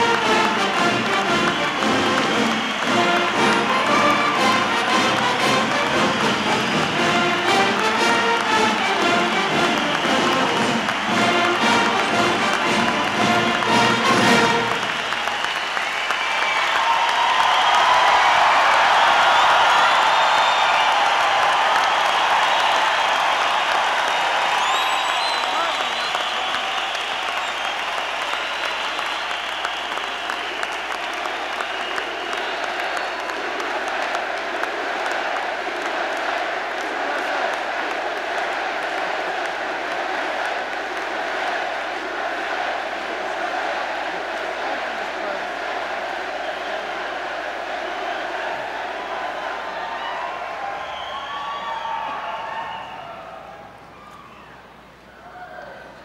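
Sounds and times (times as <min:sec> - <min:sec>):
brass band playing: 0:00.0 - 0:15.1
crowd clapping and cheering: 0:00.0 - 0:56.0
whistling: 0:00.7 - 0:07.4, 0:09.2 - 0:12.1, 0:13.8 - 0:18.3, 0:18.9 - 0:33.4, 0:46.3 - 0:47.1, 0:49.4 - 0:54.6.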